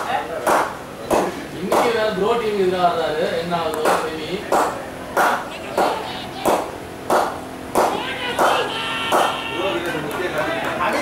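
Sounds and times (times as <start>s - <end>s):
hand claps: 0.4s - 1.9s, 3.7s - 10.9s.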